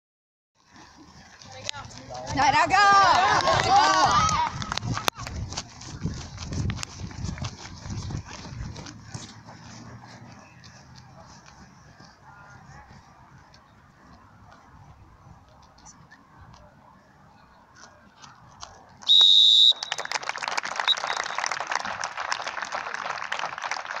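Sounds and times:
referee's whistle blast: 19.1 - 20.0
spectators applauding: 19.5 - 24.0.

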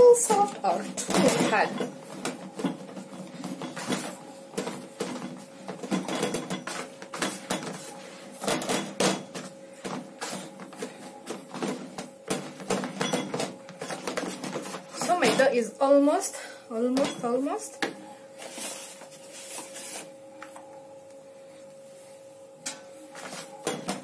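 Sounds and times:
dough kneading thuds: 0.0 - 15.6.

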